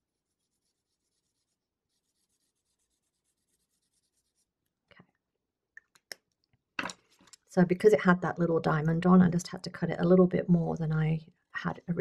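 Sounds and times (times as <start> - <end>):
marker scratching on paper: 0.2 - 4.5.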